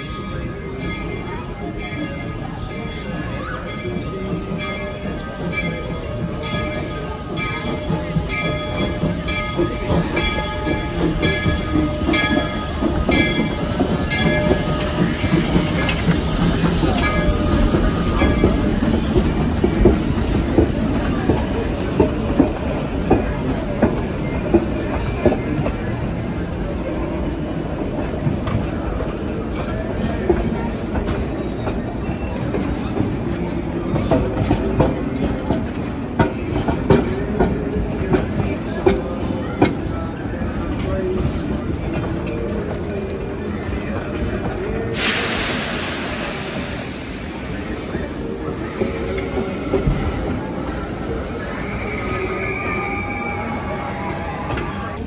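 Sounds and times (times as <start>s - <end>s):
steam train bell ringing: 0.0s - 23.0s
rumble of train coaches: 0.0s - 55.0s.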